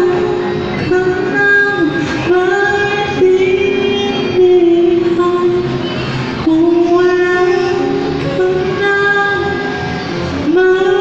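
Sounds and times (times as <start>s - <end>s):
person singing into a microphone: 0.0s - 11.0s.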